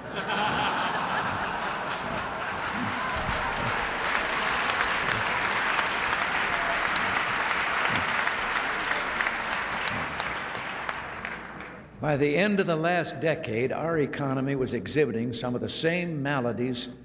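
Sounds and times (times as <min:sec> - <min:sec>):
audience applauding: 0:00.0 - 0:11.9.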